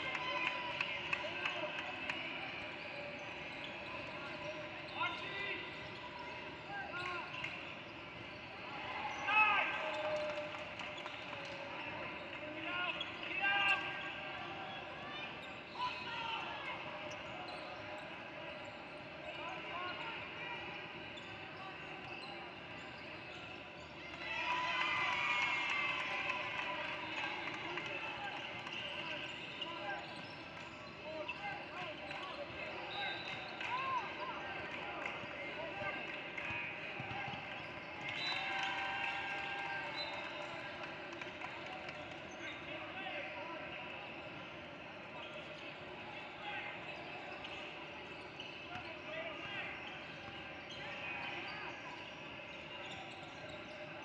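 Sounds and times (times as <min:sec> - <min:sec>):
voices of players: 0:00.0 - 0:54.0
sneaker squeaks: 0:01.5 - 0:24.4, 0:26.9 - 0:40.7, 0:41.4 - 0:54.0.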